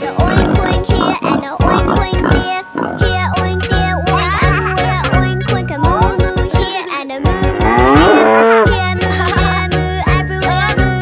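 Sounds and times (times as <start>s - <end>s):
children's song with beat: 0.0s - 11.0s
pig oinking: 0.1s - 3.2s, 7.5s - 8.7s.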